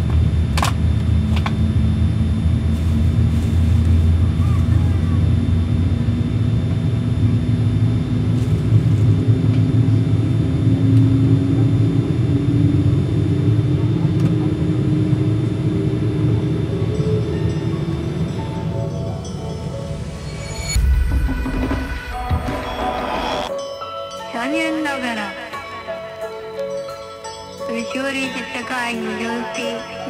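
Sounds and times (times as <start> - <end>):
jet engine spooling up: 5.0 - 23.5.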